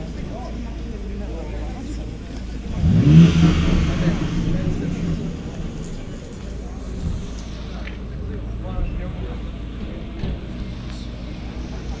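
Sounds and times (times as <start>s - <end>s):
car engines idling: 0.0s - 12.0s
people talking: 0.0s - 12.0s.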